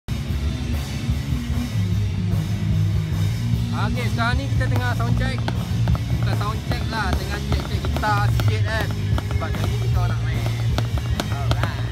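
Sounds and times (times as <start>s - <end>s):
deep bass riff: 0.1s - 11.9s
drums: 0.1s - 11.9s.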